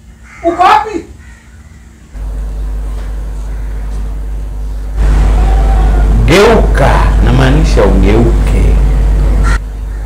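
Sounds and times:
loud low rumble: 0:03.6 - 0:09.7.

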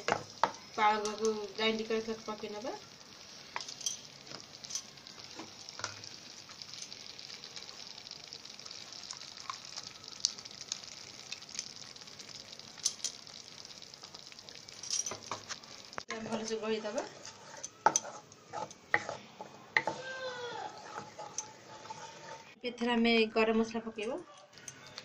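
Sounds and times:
sauce sizzling in oil: 0:00.0 - 0:22.6.

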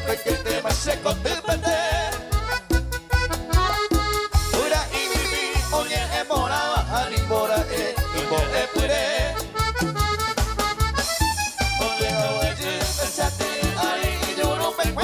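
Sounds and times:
people singing: 0:00.0 - 0:02.4, 0:04.5 - 0:09.6, 0:11.8 - 0:15.0
live band playing polka: 0:00.0 - 0:15.0.

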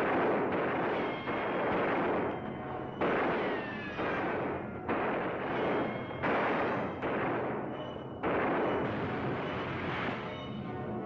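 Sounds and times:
ringing gunshots: 0:00.0 - 0:11.0.

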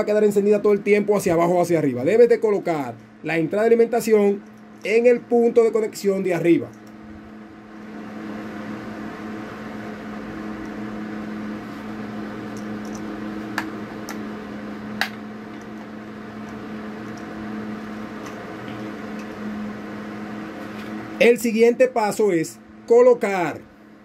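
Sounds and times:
low machine hum: 0:00.0 - 0:24.0.

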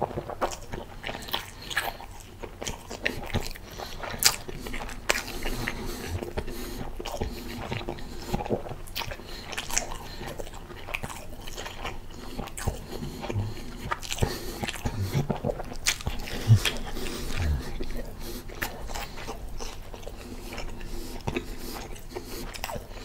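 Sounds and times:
chewing with wet mouth clicks: 0:00.0 - 0:23.0.

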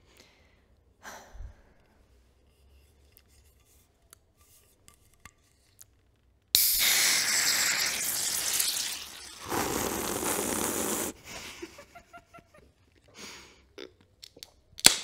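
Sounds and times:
gas hissing out of can: 0:06.6 - 0:11.4.

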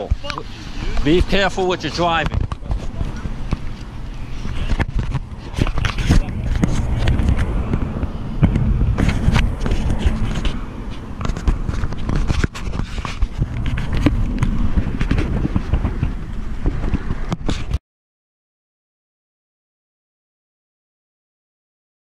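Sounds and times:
heavy low rumble: 0:00.5 - 0:17.8
sharp clicks and scrapes: 0:01.0 - 0:17.8
fingers rubbing on camera: 0:02.1 - 0:17.8.

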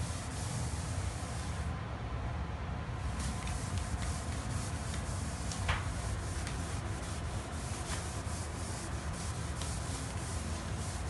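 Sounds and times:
hand scrubbing hard surface: 0:00.0 - 0:01.6, 0:03.2 - 0:11.0.

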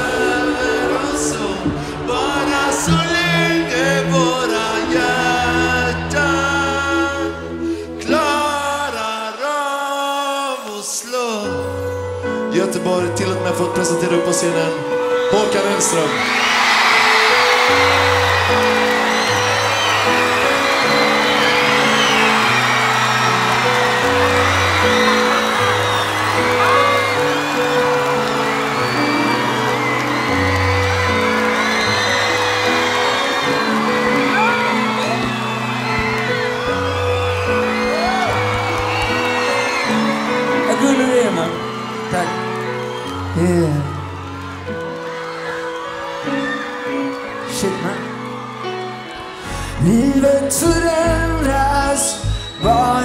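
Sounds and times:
crowd singing in unison: 0:00.0 - 0:10.7
crowd whooping: 0:00.0 - 0:11.4, 0:14.0 - 0:53.0
live band playing: 0:16.1 - 0:45.5.

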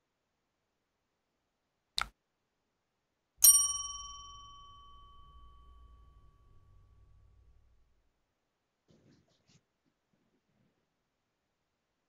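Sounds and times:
bell ding: 0:03.4 - 0:07.8.

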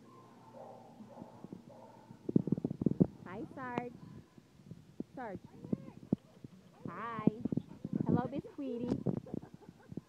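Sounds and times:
dog panting: 0:06.0 - 0:10.0.

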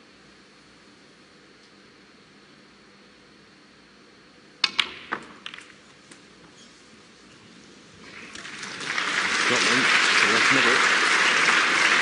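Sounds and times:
cue striking snooker ball: 0:04.6 - 0:05.8
snooker balls clicking together: 0:04.6 - 0:06.2.

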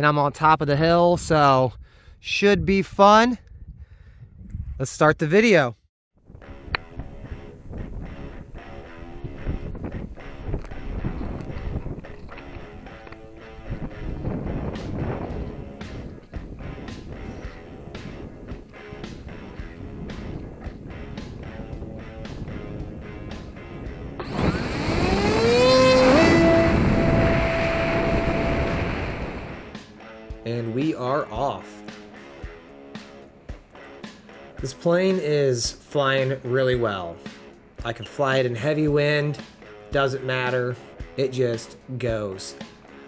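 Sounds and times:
background music with beat: 0:12.4 - 0:24.3, 0:29.7 - 0:43.0
brushless motors whining: 0:24.2 - 0:29.7.

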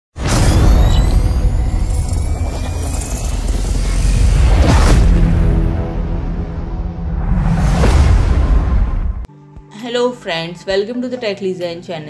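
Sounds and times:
deep low rumble: 0:01.0 - 0:09.3.

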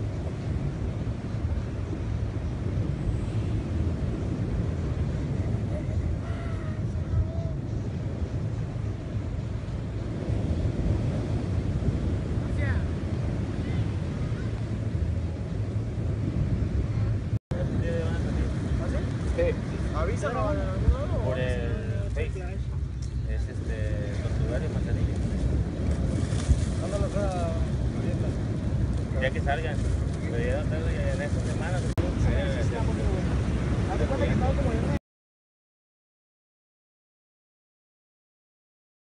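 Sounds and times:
surf: 0:00.0 - 0:35.0
wind buffeting microphone: 0:00.0 - 0:35.0
wind rumble: 0:00.0 - 0:35.0.

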